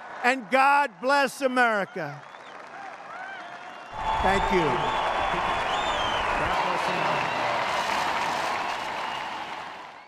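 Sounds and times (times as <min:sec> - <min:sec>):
crowd applauding: 0:00.0 - 0:10.0.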